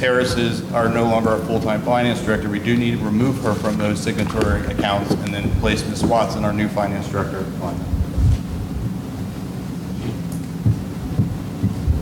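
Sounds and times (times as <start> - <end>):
low room hum: 0.0 - 12.0
dull low thumps: 4.4 - 6.5, 10.6 - 12.0.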